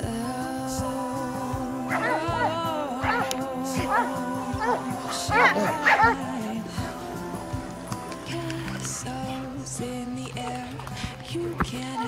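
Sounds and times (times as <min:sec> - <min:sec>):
background music: 0:00.0 - 0:12.0
dogs whining: 0:01.8 - 0:08.2.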